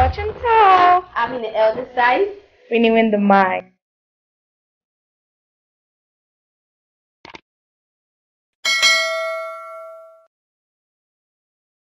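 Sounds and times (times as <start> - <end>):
notification bell chime: 8.7 - 10.3.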